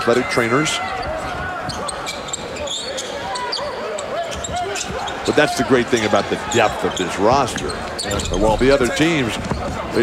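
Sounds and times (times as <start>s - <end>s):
crowd voices in arena: 0.0s - 10.0s.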